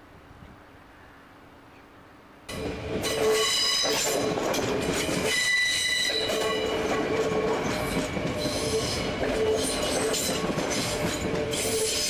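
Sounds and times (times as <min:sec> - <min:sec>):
faint outdoor background: 0:00.0 - 0:12.0
electric train passing: 0:02.5 - 0:12.0
train wheels squealing: 0:02.6 - 0:12.0.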